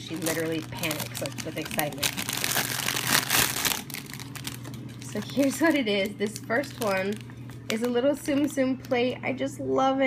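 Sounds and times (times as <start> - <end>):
cellophane wrapping crinkling: 0.0 - 9.2.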